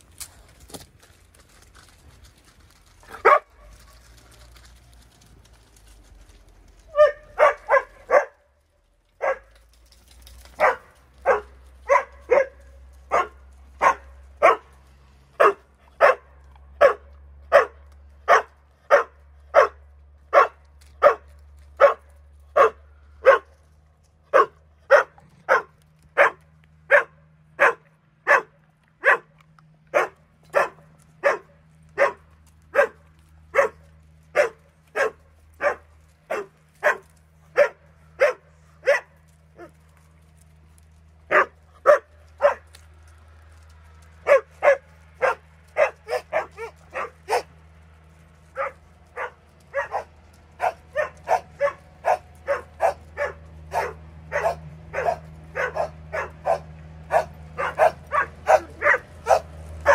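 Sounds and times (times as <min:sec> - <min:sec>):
dog barking: 0:03.1 - 0:03.6, 0:06.9 - 0:08.4, 0:09.2 - 0:09.5, 0:10.6 - 0:14.7, 0:15.4 - 0:23.6, 0:24.3 - 0:29.3, 0:29.9 - 0:39.7, 0:41.3 - 0:42.6, 0:44.2 - 0:47.5, 0:48.6 - 0:59.9.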